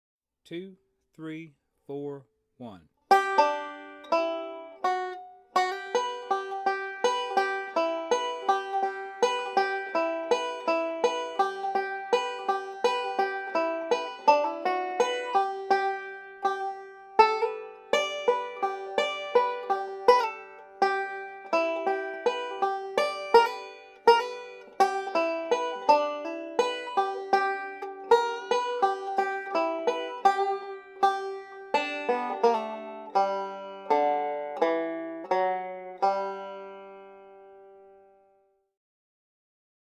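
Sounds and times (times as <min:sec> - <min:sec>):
banjo picking fast rolls: 0:03.1 - 0:37.6.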